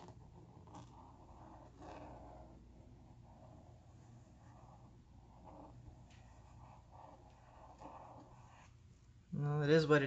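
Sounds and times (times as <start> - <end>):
low steady hum: 0.0 - 10.0
brush pen strokes on paper: 0.7 - 8.8.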